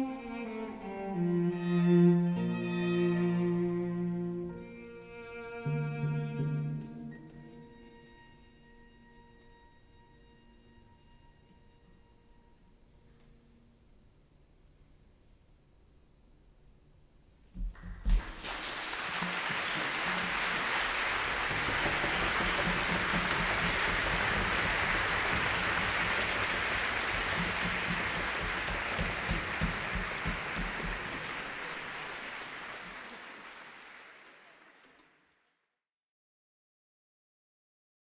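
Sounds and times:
audience clapping: 17.6 - 35.6.

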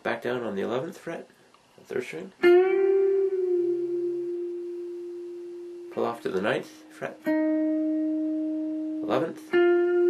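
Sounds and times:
electric guitar note ringing: 2.4 - 10.0.

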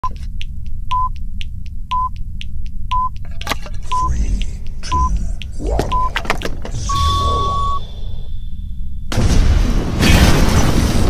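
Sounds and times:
clock-like ticks: 0.0 - 6.2
steady low rumble: 0.0 - 9.9
high electronic beep: 3.9 - 4.2, 4.8 - 8.4.

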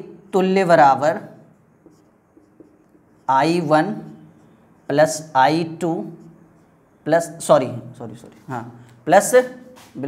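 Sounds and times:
marker pen writing on whiteboard: 0.0 - 10.0.

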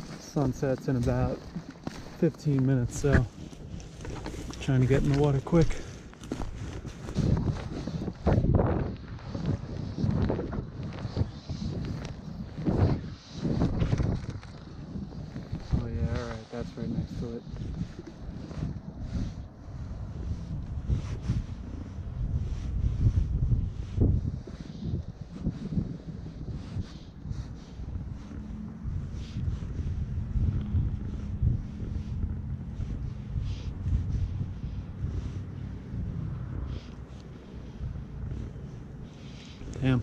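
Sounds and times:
wind buffeting microphone: 0.0 - 40.0.

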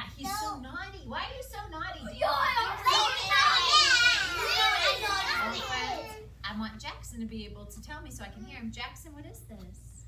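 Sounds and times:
children talking and calling out: 2.0 - 6.4.

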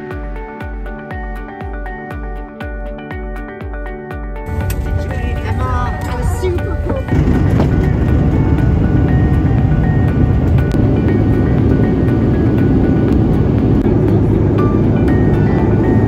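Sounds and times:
uplifting corporate background music: 0.0 - 16.0.

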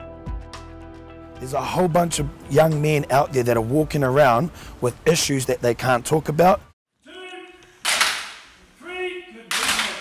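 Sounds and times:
wooden sticks striking together: 7.6 - 8.6, 9.5 - 10.0.

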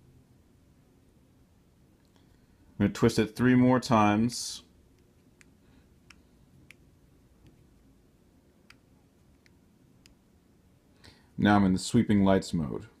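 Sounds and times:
faint sharp clicks: 5.0 - 6.8.

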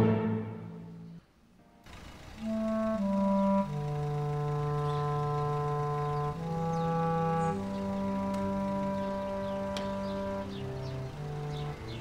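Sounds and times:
held wind instrument chords: 0.0 - 1.3, 2.4 - 12.0.

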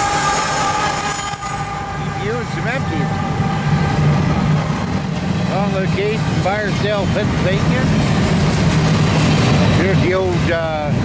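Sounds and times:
freight train rolling past: 0.0 - 11.0
steel wheels rumbling on rail: 0.0 - 11.0.

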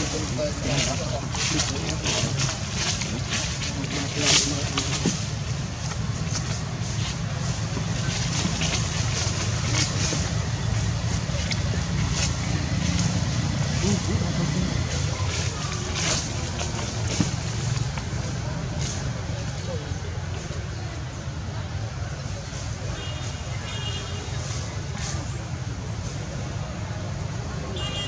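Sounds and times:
scratchy rustles: 0.0 - 19.2
indistinct background voices: 0.0 - 23.6.

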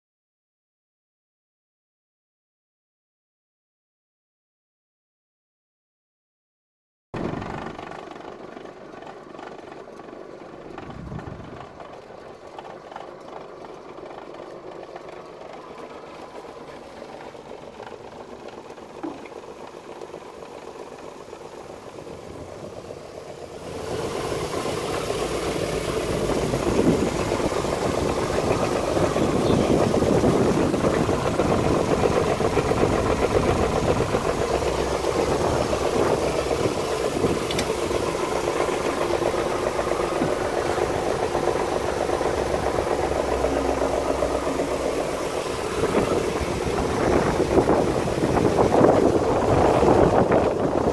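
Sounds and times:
vibratory screener running: 13.7 - 50.9.

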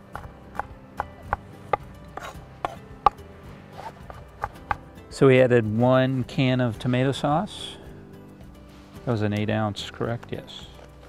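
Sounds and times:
knife chopping on wooden board: 0.0 - 3.2, 3.8 - 4.9.

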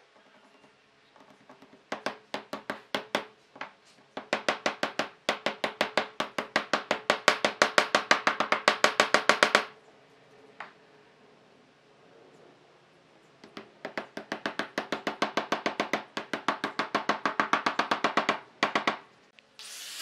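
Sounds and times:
mallet tapping wood: 1.2 - 9.7, 13.4 - 19.0.

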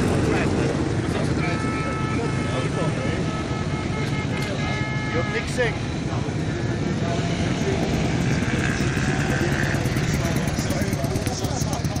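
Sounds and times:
voices talking: 0.0 - 12.0
motorcycle engine at low revs: 6.8 - 12.0.

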